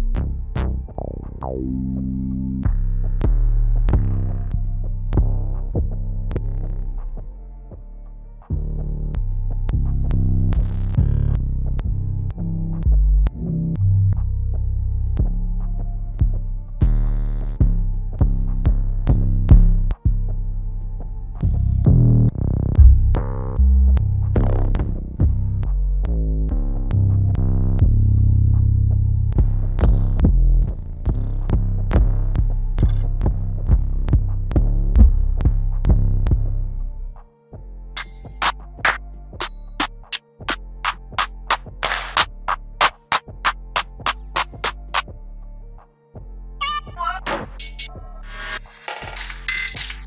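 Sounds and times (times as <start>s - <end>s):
deep bass notes with click: 0.0s - 7.2s, 8.4s - 20.3s, 21.4s - 36.9s.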